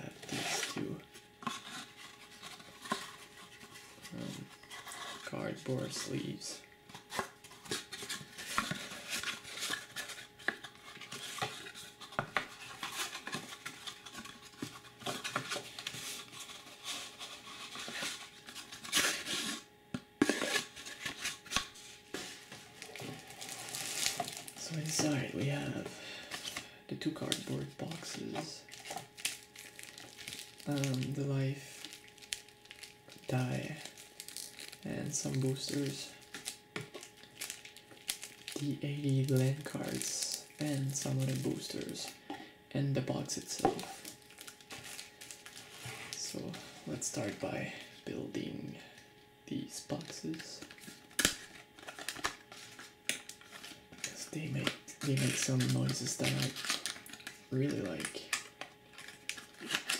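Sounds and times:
handling cardboard boxes and wrap: 0:00.0 - 0:42.2, 0:43.1 - 0:48.2, 0:49.9 - 0:59.9.

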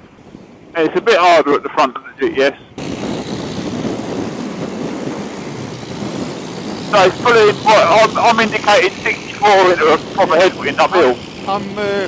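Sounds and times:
wind rushing: 0:02.7 - 0:12.0
scooter road noise: 0:02.8 - 0:12.0.

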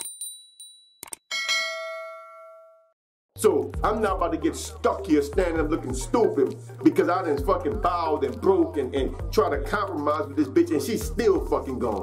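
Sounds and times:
bright bell chime: 0:00.0 - 0:02.9
small bell ringing: 0:00.0 - 0:02.9.

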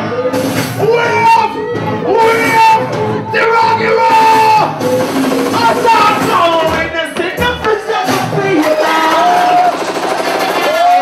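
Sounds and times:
backing track over pa: 0:00.0 - 0:10.7.

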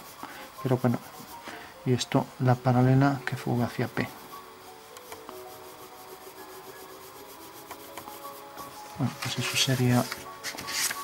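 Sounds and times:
pencil scratching on paper: 0:00.0 - 0:01.4, 0:05.3 - 0:11.0.

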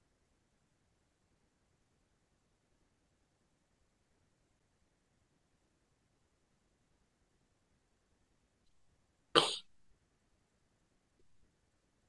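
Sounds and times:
person coughing: 0:09.4 - 0:09.7.

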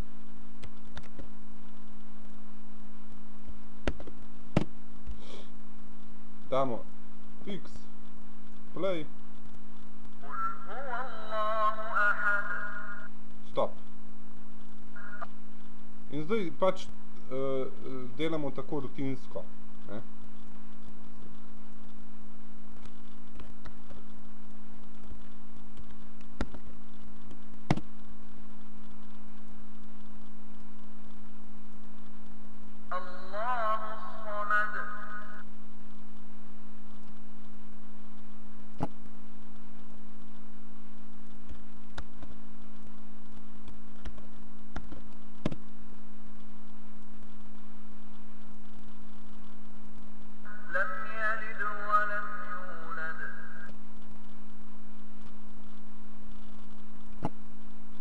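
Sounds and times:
low electrical hum: 0:00.0 - 0:58.0
faint ticks: 0:18.2 - 0:32.9, 0:35.4 - 0:50.4, 0:53.6 - 0:58.0.

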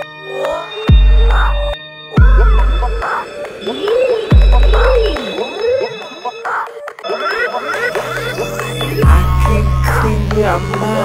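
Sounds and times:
wobbling synth tones: 0:00.9 - 0:11.0
deep booming bass drum: 0:09.0 - 0:10.6.

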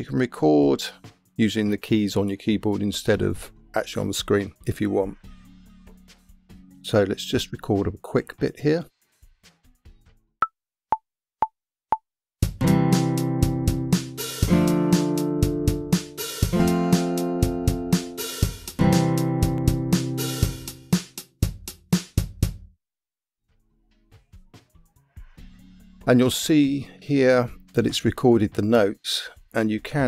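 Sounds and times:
strummed acoustic guitar chords: 0:12.6 - 0:20.6
drum machine beat: 0:13.5 - 0:22.7.

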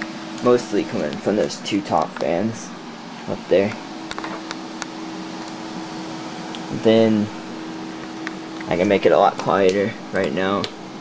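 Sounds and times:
computer fans running: 0:00.0 - 0:11.0.

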